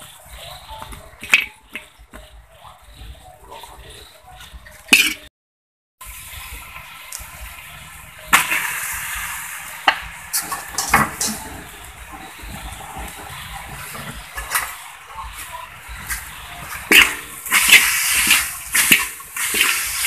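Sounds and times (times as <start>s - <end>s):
food sizzling in a wok: 6.0s - 20.0s.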